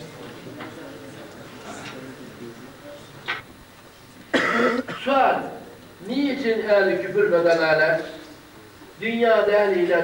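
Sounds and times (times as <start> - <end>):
man clearing his throat: 4.3 - 5.2.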